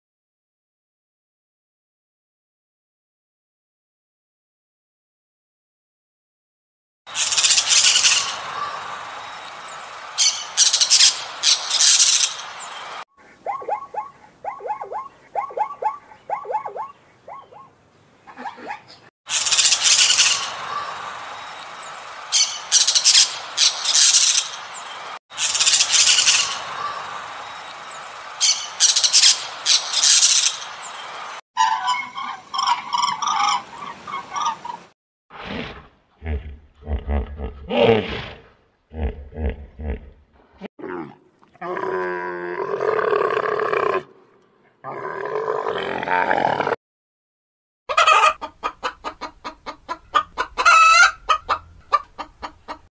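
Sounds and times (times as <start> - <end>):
quick repeated bird notes: 13.3 - 17.7.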